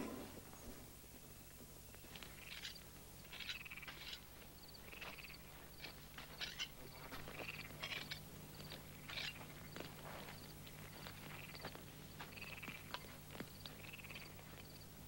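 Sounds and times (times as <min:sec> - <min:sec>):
low steady hum: 0:00.0 - 0:15.0
frogs chirping and trilling: 0:02.0 - 0:15.0.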